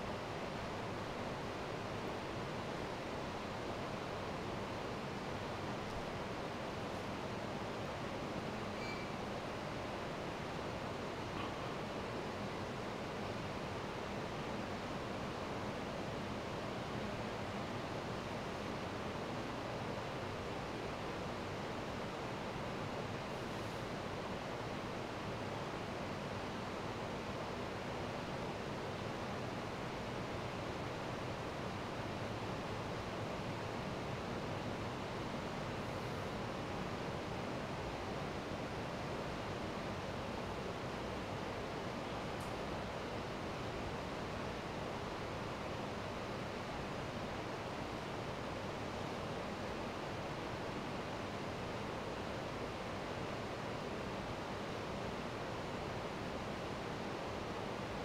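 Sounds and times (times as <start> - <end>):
room tone hiss: 0.0 - 58.0.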